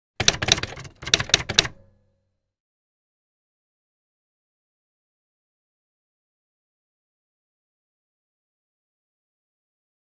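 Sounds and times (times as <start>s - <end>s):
typewriter keys clicking: 0.2s - 1.9s.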